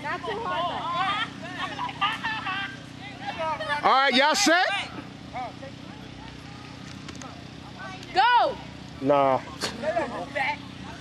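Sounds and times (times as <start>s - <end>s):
faint outdoor background: 0.0s - 11.0s
steady low hum: 0.0s - 11.0s.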